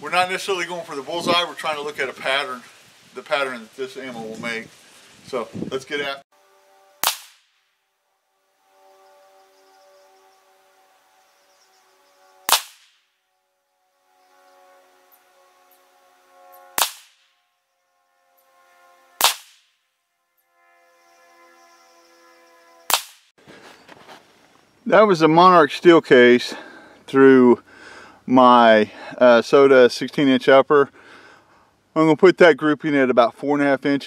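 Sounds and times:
rifle shots: 7.0 - 7.6, 12.5 - 13.0, 16.7 - 17.3, 19.2 - 19.7, 22.9 - 23.2.

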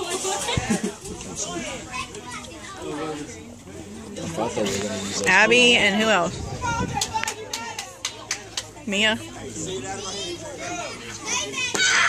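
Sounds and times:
children's voices chattering: 0.0 - 12.0.

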